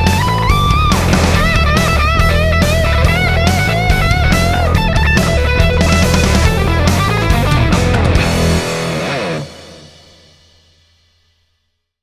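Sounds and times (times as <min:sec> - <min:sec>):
fuzzed electric guitar: 0:00.0 - 0:10.7.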